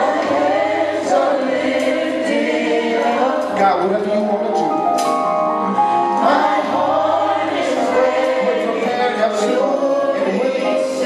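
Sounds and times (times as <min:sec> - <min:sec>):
gospel choir singing: 0:00.0 - 0:11.0
sustained instrumental chords: 0:00.0 - 0:11.0.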